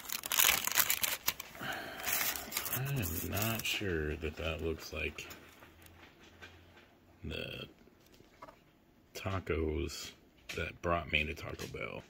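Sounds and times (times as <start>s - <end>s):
paper wrapper crinkling: 0.0s - 6.6s
man talking: 2.6s - 5.5s, 7.2s - 7.8s, 9.1s - 12.0s.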